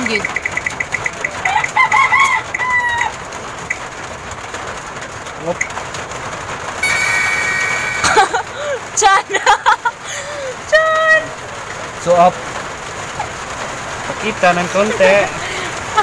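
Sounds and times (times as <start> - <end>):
spinning wheel app ticking: 0.0 - 1.7, 6.8 - 9.2
rooster crowing: 1.5 - 3.2
long steady pitched call: 6.8 - 8.3.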